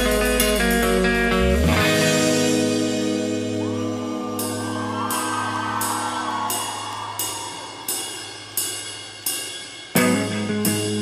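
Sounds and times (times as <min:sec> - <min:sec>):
rock band playing chords: 0:00.0 - 0:08.0, 0:09.9 - 0:11.0.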